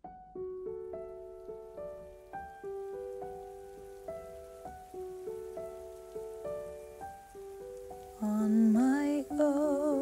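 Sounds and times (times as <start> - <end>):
faint steady hiss: 0.0 - 10.0
soft solo piano: 0.0 - 10.0.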